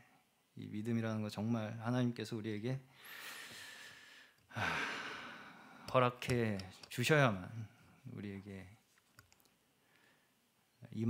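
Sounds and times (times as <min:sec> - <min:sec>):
man breathing: 0:02.9 - 0:05.9
man speaking: 0:05.9 - 0:08.8.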